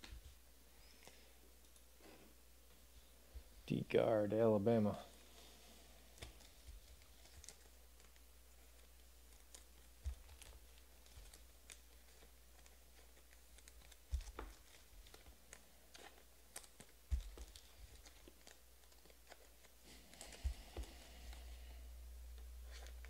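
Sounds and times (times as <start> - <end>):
trading cards clicking and tapping: 9.3 - 21.5.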